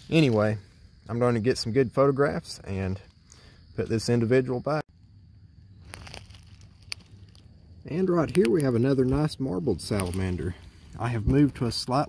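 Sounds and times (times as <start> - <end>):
faint outdoor background: 0.0 - 12.0
light crackles: 4.9 - 11.9.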